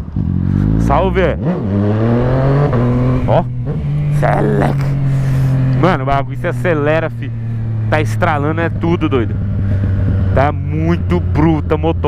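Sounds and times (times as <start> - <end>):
motorcycle engine running: 0.0 - 12.0.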